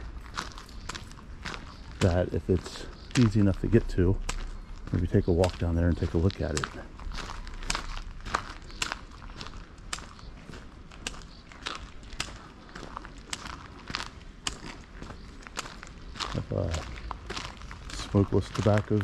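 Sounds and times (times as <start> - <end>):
footsteps on paved stone: 0.0 - 19.0.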